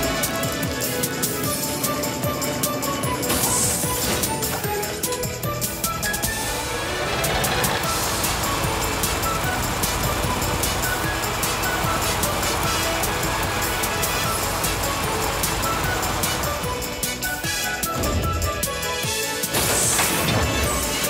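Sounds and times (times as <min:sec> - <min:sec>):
light background music: 0:00.0 - 0:21.0.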